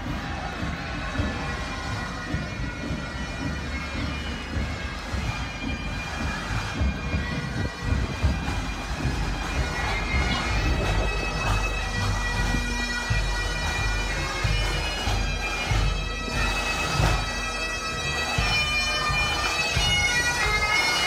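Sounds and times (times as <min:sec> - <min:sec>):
bagpipes playing held notes: 0:00.0 - 0:21.0.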